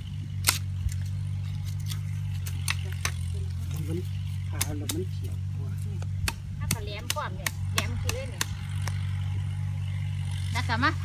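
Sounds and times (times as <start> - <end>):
low mechanical hum: 0.0 - 11.0
woman speaking: 10.5 - 11.0.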